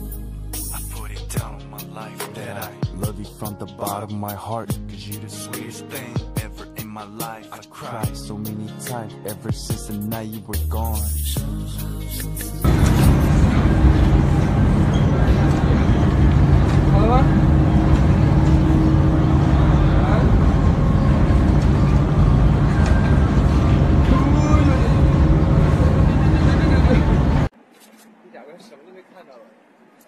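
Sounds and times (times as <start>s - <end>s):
crowd hubbub: 12.6s - 27.5s.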